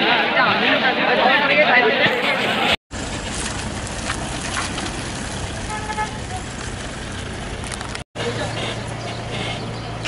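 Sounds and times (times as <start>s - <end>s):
car moving on pavement: 2.2s - 10.0s
car horn toot: 5.6s - 6.5s.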